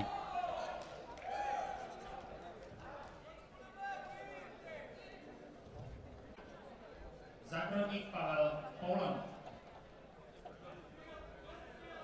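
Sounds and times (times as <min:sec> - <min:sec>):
low murmur of hall: 0:00.0 - 0:12.0.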